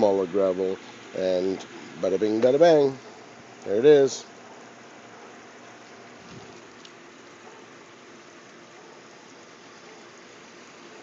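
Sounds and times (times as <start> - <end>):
water pouring into a pond: 3.3 - 11.0.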